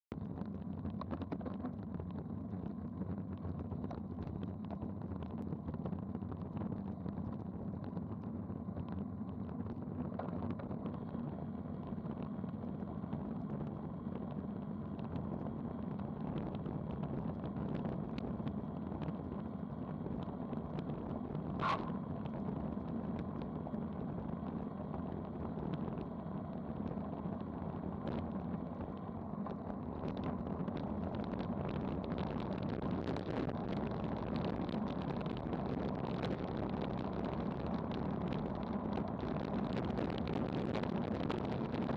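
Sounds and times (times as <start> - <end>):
wind rushing over camera: 0.1 - 41.9
bike tyres on asphalt: 0.2 - 41.9.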